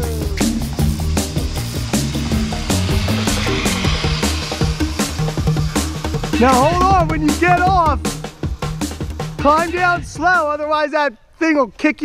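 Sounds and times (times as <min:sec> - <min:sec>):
zip-line pulley whirring on cable: 0:00.0 - 0:06.9
rock music with drum beat: 0:00.0 - 0:10.5.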